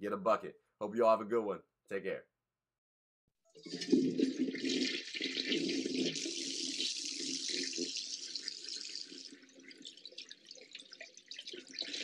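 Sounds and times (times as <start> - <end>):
water running: 3.6 - 12.0.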